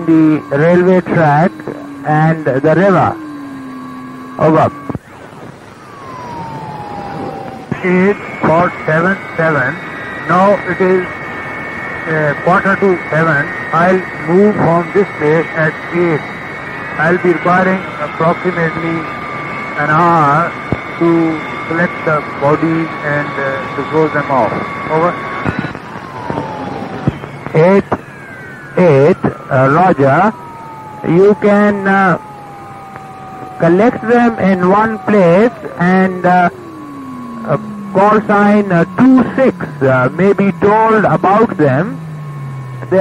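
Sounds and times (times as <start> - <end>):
steady whistle tones: 0.0 - 5.2, 5.8 - 43.0
radio static hiss: 0.0 - 43.0
radio clicks: 25.4 - 27.6, 32.9 - 33.1.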